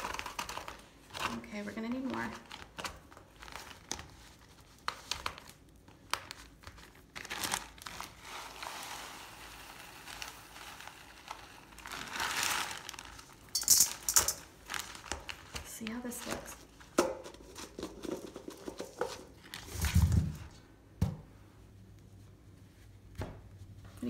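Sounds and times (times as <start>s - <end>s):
plastic bag crackling: 0.0s - 16.8s
plastic bag crinkling: 0.0s - 19.8s
rice grains pouring with a hiss: 8.2s - 12.8s.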